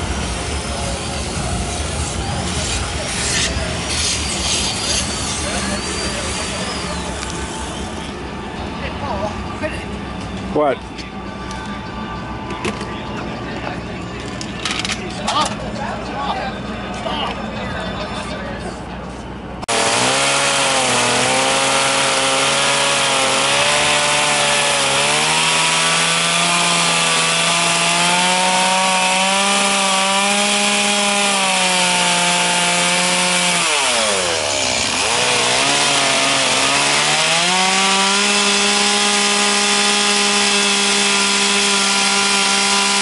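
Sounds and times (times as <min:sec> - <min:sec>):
chainsaw carving wood: 0:19.7 - 0:43.0.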